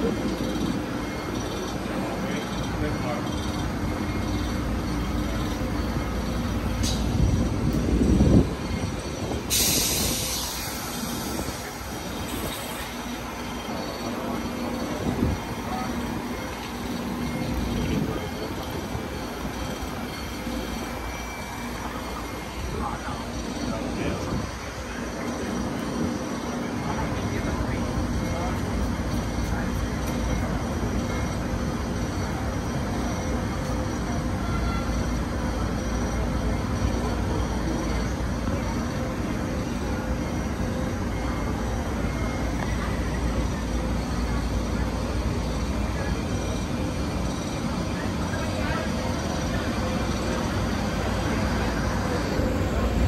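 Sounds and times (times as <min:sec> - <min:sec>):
passenger train rumbling: 0:00.0 - 0:53.0
air hiss burst: 0:09.5 - 0:11.6.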